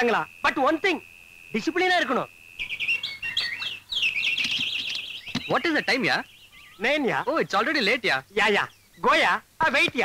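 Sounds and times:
small birds chirping: 0:01.4 - 0:10.0.

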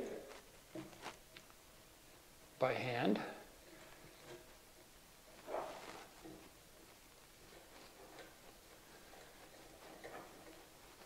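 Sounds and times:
soft handling sound: 0:00.0 - 0:02.2, 0:03.6 - 0:11.0.

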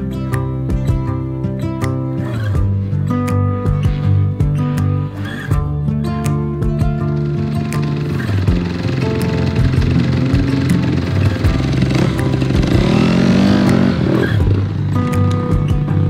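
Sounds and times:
background music: 0:00.0 - 0:16.0
motorbike engine revving: 0:06.8 - 0:16.0.

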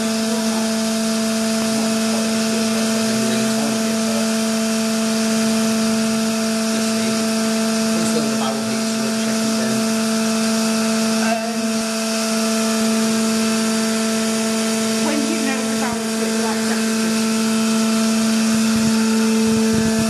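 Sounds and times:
machine hum with fixed tones: 0:00.0 - 0:20.0.

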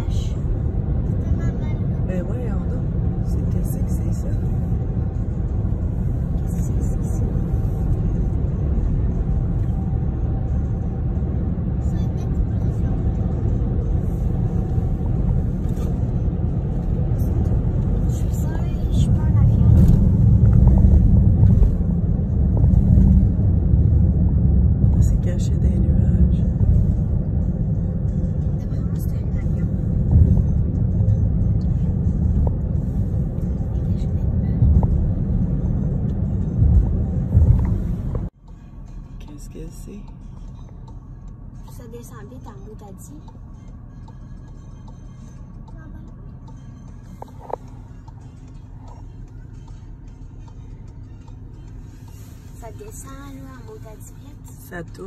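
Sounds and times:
loud low rumble: 0:04.2 - 0:38.3.

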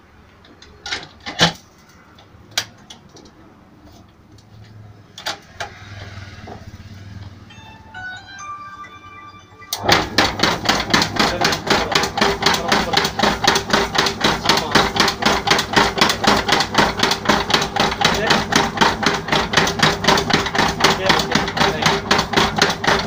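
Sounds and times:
electronic tones: 0:07.5 - 0:10.2.

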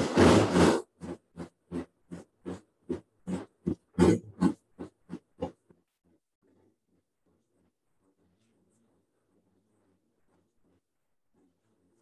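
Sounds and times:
blender pulsing: 0:00.0 - 0:05.5.

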